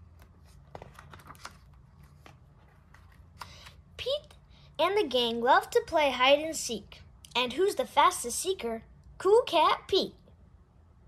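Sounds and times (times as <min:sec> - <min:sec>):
book page turning: 0:00.0 - 0:03.8.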